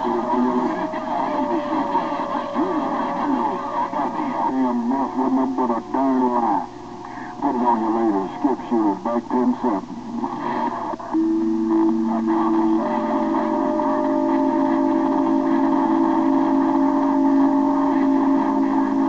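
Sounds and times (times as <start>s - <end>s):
steady whistle tone: 0.0s - 7.7s, 11.1s - 19.0s
distorted radio voices: 0.0s - 19.0s.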